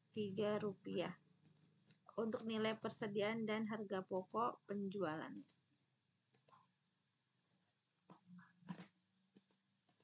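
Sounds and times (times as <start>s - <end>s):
computer mouse clicks: 1.4s - 2.5s, 4.1s - 4.5s, 5.2s - 5.7s, 6.3s - 6.7s, 8.0s - 10.0s.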